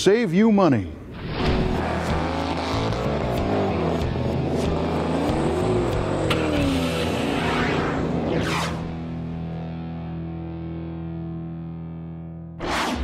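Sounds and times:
car engine revving: 0:01.2 - 0:09.8
sharp click: 0:06.3 - 0:06.7.

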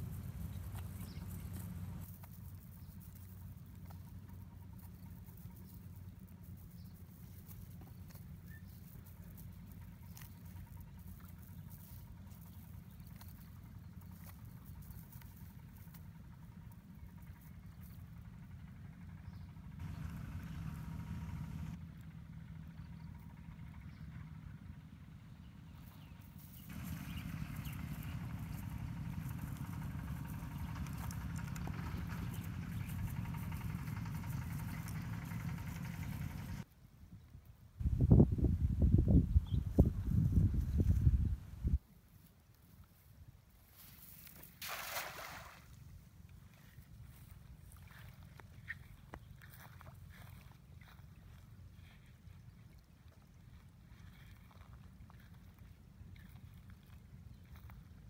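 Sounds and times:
steady low rumble: 0:00.0 - 0:36.7, 0:37.8 - 0:41.8.

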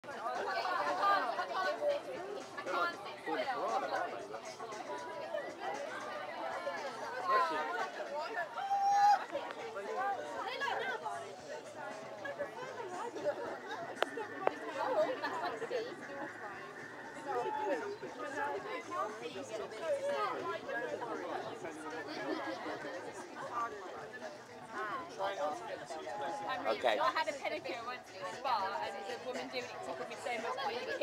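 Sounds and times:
chatter of people talking: 0:00.0 - 0:31.0.

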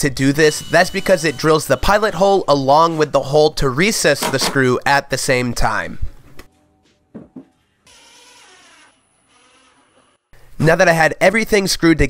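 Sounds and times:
cordless drill running: 0:07.9 - 0:10.3.

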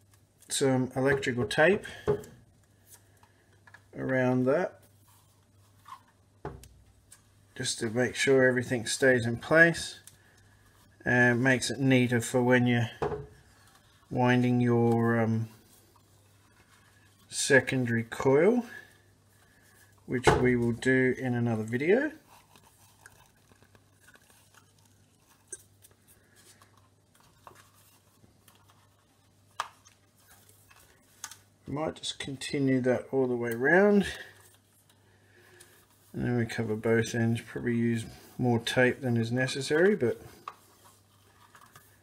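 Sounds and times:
tape rubbing on plastic spool: 0:22.0 - 0:26.0.

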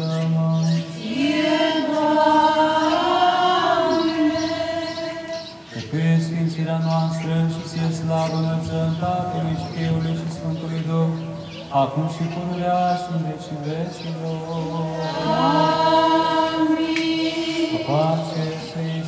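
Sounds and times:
man chanting on one note: 0:00.0 - 0:01.0, 0:05.7 - 0:15.7, 0:17.6 - 0:19.0.

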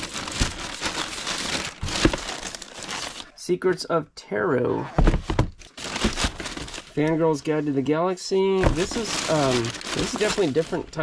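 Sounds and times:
plastic bag crinkling: 0:00.0 - 0:03.3, 0:05.3 - 0:07.3, 0:08.6 - 0:11.0.

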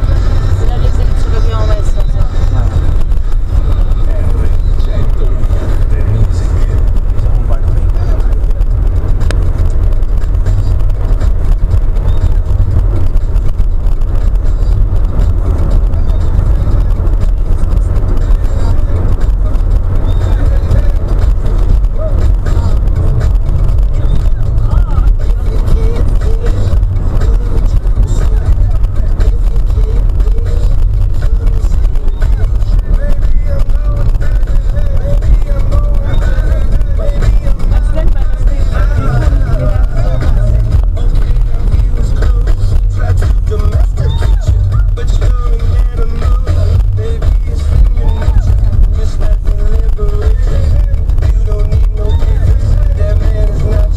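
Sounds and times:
car engine and road rumble: 0:00.0 - 0:53.9
indistinct voices: 0:00.0 - 0:53.9.

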